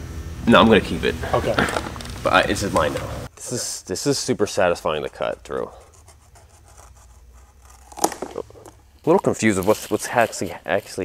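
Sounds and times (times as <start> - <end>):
steady low hum: 0.0 - 11.0
knife cutting strap: 6.6 - 8.8.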